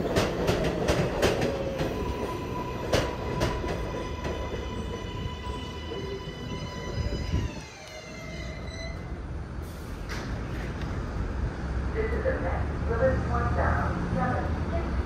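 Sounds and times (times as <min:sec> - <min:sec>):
subway train propulsion whine: 0:00.0 - 0:15.0
train low hum: 0:00.0 - 0:15.0
voices: 0:11.9 - 0:15.0.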